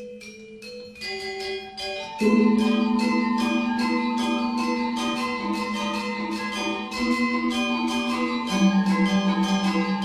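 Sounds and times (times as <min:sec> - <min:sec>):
gamelan ensemble playing: 0:00.0 - 0:10.0
low gong tone with wavering beat: 0:02.2 - 0:09.7.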